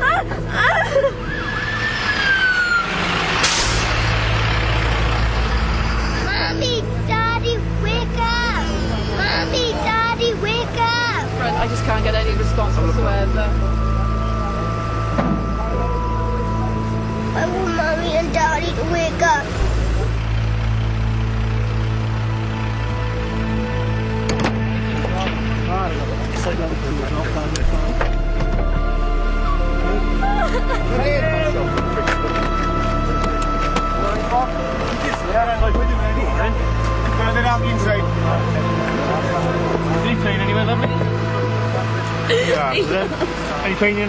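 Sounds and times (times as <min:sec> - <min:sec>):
diesel engine rumbling: 0:00.0 - 0:44.0
siren winding down: 0:01.2 - 0:03.9
air brake hiss: 0:03.4 - 0:04.0.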